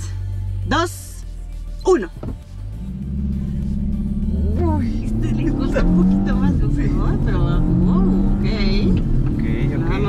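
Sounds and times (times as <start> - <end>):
car engine accelerating hard: 2.3 - 10.0.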